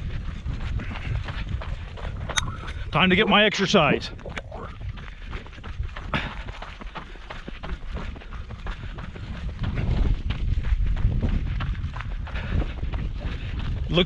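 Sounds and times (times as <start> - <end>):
running footsteps on gravel: 0.0 - 14.0.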